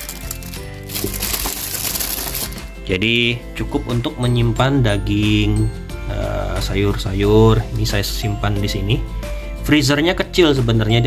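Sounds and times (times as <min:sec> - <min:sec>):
plastic bag rustling: 0:00.0 - 0:02.7
background music: 0:00.0 - 0:11.0.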